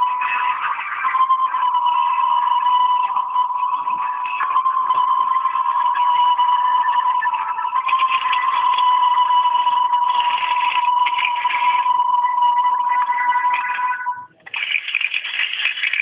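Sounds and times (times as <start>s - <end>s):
high-pitched electronic tone: 0.0s - 16.0s.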